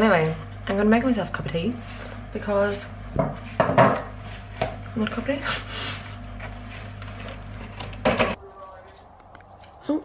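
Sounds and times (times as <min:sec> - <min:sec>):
kitchen knocks and clicks: 0:03.2 - 0:04.1.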